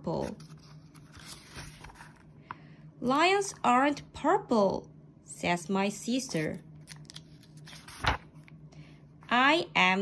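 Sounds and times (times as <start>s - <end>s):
paper page turning: 0.2s - 2.3s, 6.3s - 8.5s.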